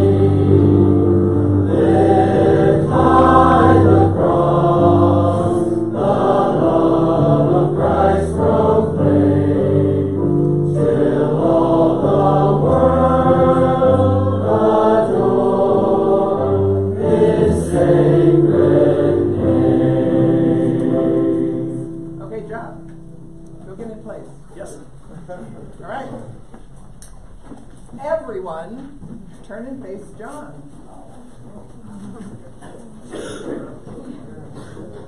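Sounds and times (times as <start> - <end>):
congregation singing a hymn: 0.0 - 23.4.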